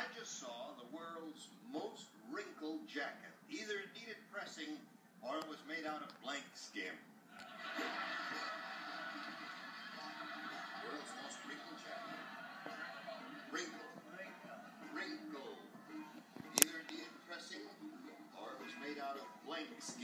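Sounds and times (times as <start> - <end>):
background music from television: 0.0 - 20.0.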